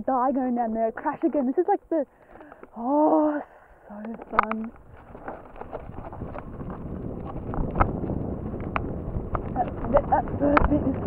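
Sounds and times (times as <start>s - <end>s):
wind buffeting microphone: 0.0s - 11.0s
mountain bike rattling over rocks: 4.0s - 11.0s.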